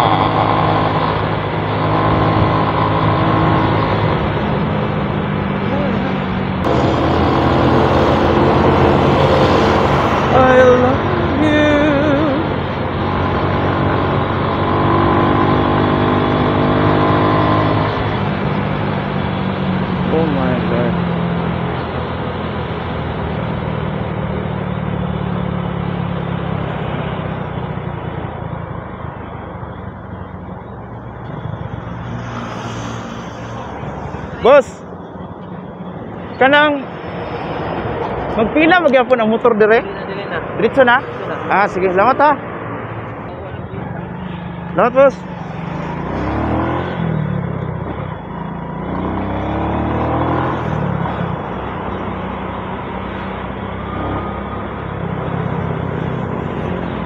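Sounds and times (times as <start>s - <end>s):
motorcycle engine running: 0.0s - 21.9s
wind and road noise: 0.0s - 57.0s.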